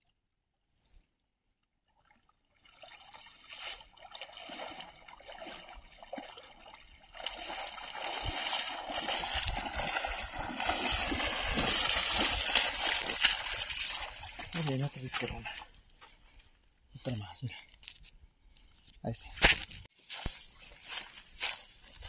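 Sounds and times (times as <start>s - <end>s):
person wading in water: 1.8s - 16.6s
water pouring off a net: 7.3s - 14.4s.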